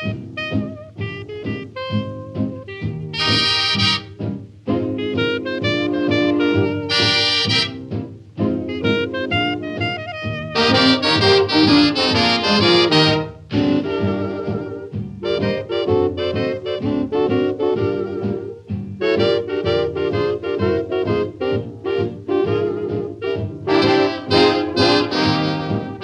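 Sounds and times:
swing dance band playing: 0.0 - 26.0.

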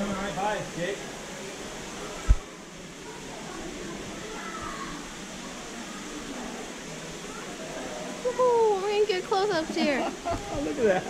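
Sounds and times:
steady background hiss: 0.0 - 11.0.

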